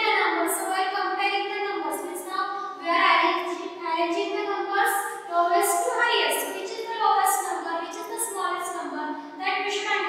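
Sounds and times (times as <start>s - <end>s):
woman speaking: 0.0s - 10.0s.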